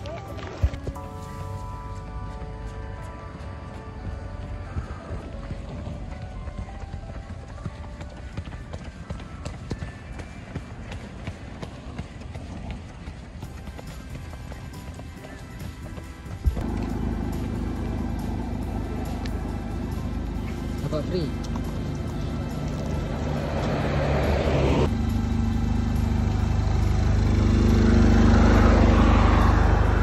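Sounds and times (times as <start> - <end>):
music playing: 0.0 - 10.4, 13.2 - 26.5
footsteps on pavement: 0.0 - 24.9
low rumbling noise: 16.5 - 30.0.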